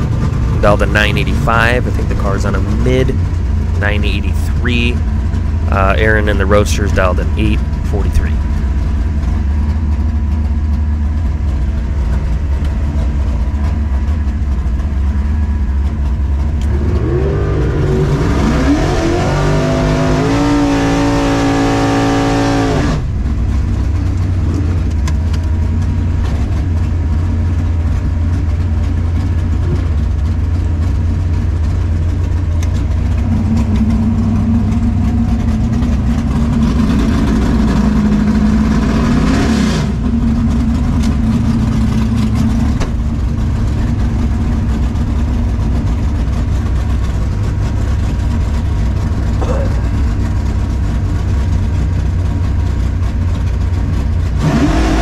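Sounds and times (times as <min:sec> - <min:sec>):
car engine revving: 0:00.0 - 0:55.0.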